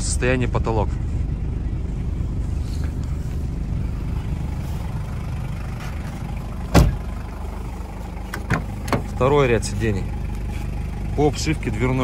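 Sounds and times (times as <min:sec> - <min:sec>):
low rumble: 0:00.0 - 0:12.0
car door thump: 0:06.7 - 0:07.1, 0:08.3 - 0:09.2.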